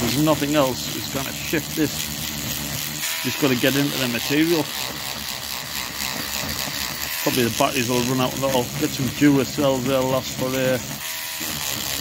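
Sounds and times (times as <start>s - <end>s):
rotary brush motor whir: 0.0s - 12.0s.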